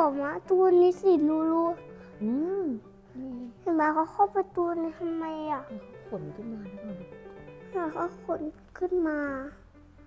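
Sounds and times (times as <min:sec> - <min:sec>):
child talking: 0:00.0 - 0:01.8, 0:02.4 - 0:05.8, 0:07.7 - 0:09.6
background music: 0:00.0 - 0:10.0.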